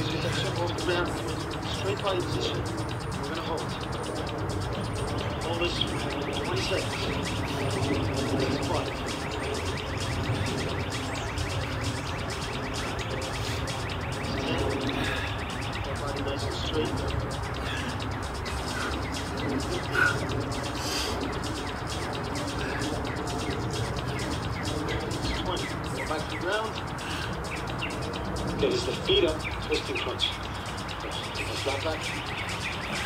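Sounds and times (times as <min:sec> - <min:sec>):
outdoor background noise: 0:00.0 - 0:33.0.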